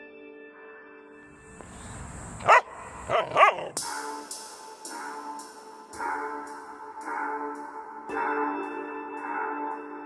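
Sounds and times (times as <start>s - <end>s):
dog barking: 2.4s - 3.8s.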